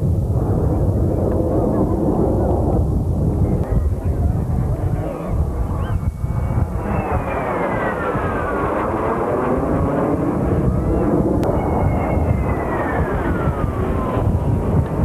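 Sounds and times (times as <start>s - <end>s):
jet aircraft flying overhead: 0.0s - 15.0s.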